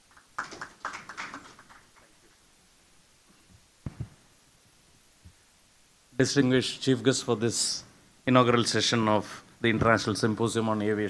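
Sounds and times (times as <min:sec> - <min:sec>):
taps and rustles on microphone: 0:03.8 - 0:04.2.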